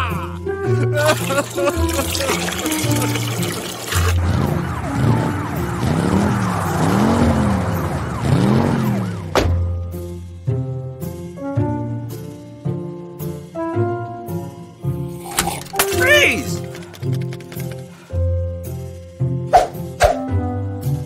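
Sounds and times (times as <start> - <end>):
cartoon background music: 0.0 - 21.0
rushing water sound effect: 1.0 - 9.0
police siren wailing: 2.7 - 9.9.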